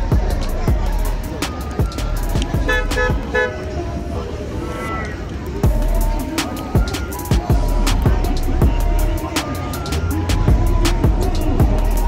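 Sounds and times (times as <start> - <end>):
music with a heavy beat: 0.0 - 3.4, 5.6 - 12.0
car horn tooting: 2.7 - 3.7.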